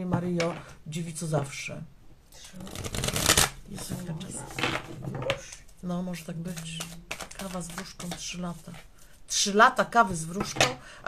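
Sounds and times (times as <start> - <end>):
cards being shuffled: 2.6 - 4.1, 5.5 - 9.2.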